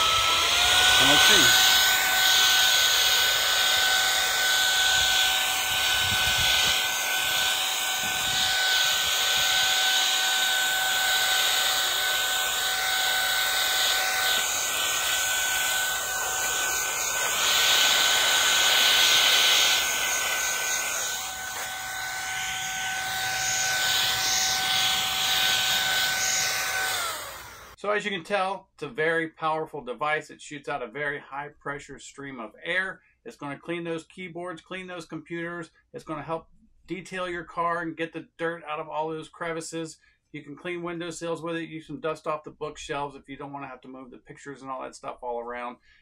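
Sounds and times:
air rushing from nozzle: 0:00.0 - 0:27.8
electric air duster whining: 0:00.0 - 0:27.8.

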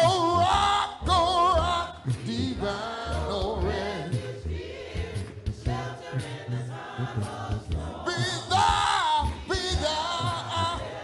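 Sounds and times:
gospel solo singing: 0:00.0 - 0:11.0.

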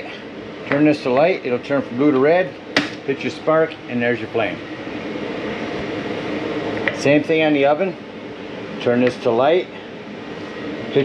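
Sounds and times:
air rushing through fan: 0:00.0 - 0:11.0.

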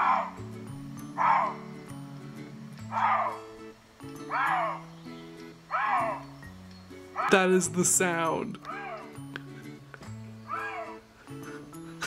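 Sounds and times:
lynx yowls through laptop speaker: 0:02.9 - 0:03.5, 0:04.3 - 0:04.8, 0:05.7 - 0:06.2, 0:07.2 - 0:07.5, 0:08.6 - 0:09.2, 0:10.5 - 0:11.0.

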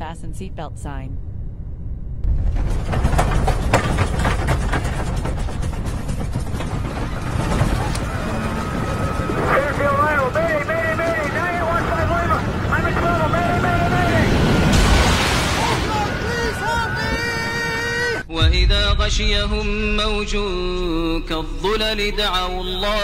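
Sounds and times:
airliner cabin rumbling and rattling: 0:02.2 - 0:23.0.

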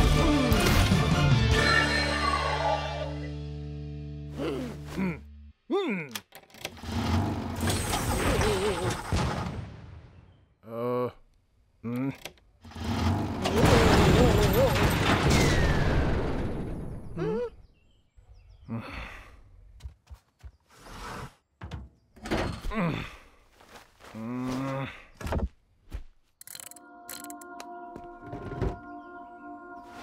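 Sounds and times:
cartoon character grunts and murmurs: 0:04.3 - 0:06.3, 0:10.6 - 0:11.2, 0:11.8 - 0:12.3, 0:17.2 - 0:17.7, 0:18.6 - 0:19.4, 0:22.7 - 0:23.4, 0:24.1 - 0:25.1.

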